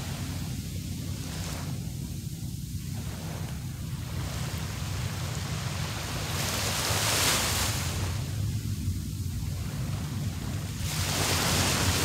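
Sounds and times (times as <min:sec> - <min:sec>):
small waves washing on sand: 0:00.0 - 0:12.0
wind rumble on microphone: 0:00.0 - 0:12.0.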